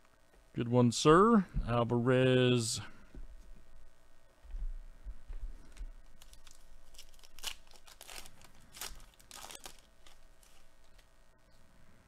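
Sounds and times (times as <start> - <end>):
wrapper being torn and crinkled: 6.2 - 11.1.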